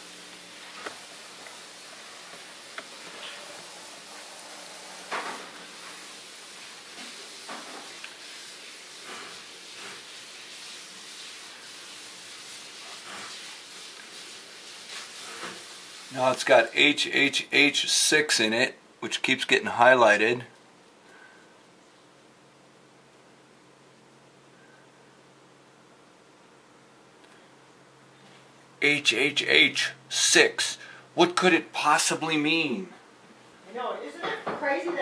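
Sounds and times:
room tone hiss: 0.0 - 35.0.

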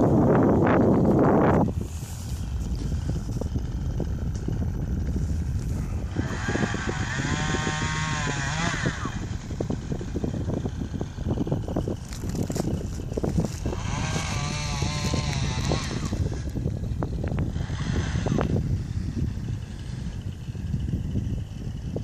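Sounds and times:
pitched drone: 0.0 - 21.9
wind buffeting microphone: 0.0 - 22.0.

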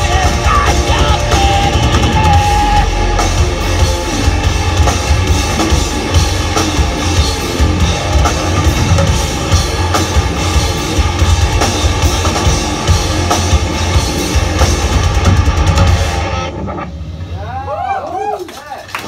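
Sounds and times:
pounding drums: 0.0 - 17.4
heavy metal band playing live: 0.0 - 18.0.

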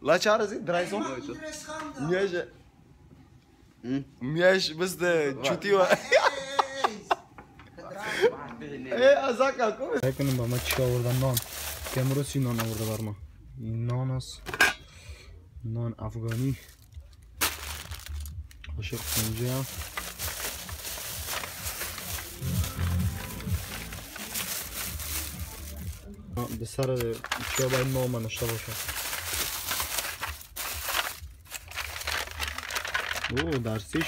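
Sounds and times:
man talking: 7.8 - 14.4, 15.6 - 16.7, 18.7 - 19.8, 25.3 - 28.9
plastic bag and foil crinkling: 10.0 - 13.2, 16.2 - 34.0.

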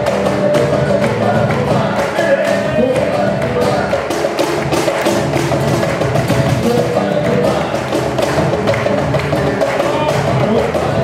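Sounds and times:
acoustic guitar: 0.0 - 11.0
cajon struck by hand: 0.0 - 11.0.

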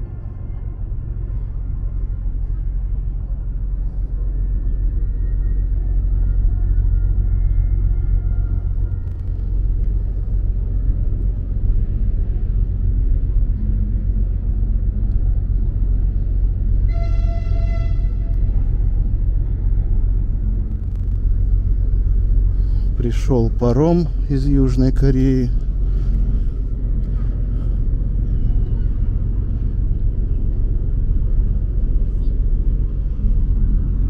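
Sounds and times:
low harbour rumble: 0.0 - 34.0.

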